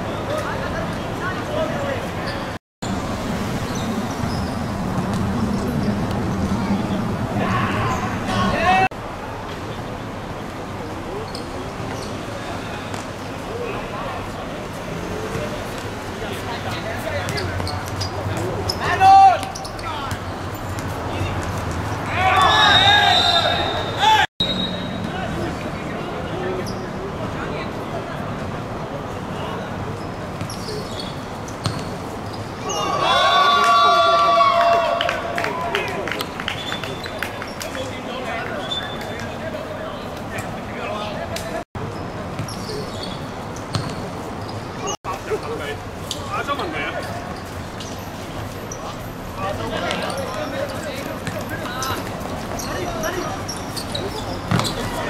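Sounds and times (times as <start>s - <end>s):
footballers' voices: 4.0s - 55.0s
loud shout: 7.4s - 8.9s, 18.8s - 19.6s, 22.0s - 24.3s, 32.6s - 36.2s
ball kicked and bouncing: 43.7s - 44.0s, 54.5s - 55.0s.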